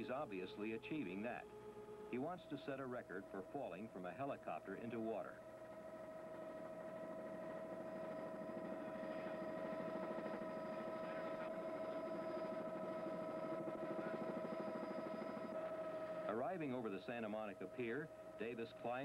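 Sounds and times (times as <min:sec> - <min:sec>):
helicopter hovering: 0:00.0 - 0:19.0.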